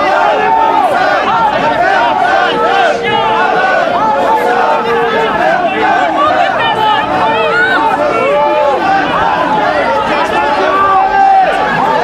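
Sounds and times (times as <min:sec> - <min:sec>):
crowd shouting and talking: 0:00.0 - 0:12.0.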